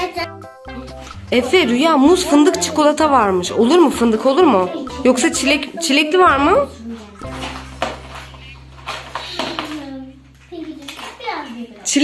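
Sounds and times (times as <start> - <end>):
children talking quietly: 9.1 - 12.0.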